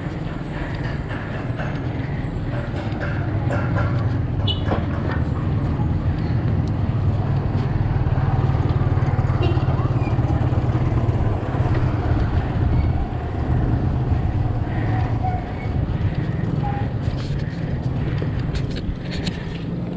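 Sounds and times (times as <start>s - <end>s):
tyre noise on concrete road: 0.0s - 19.9s
wind buffeting microphone: 0.0s - 19.9s.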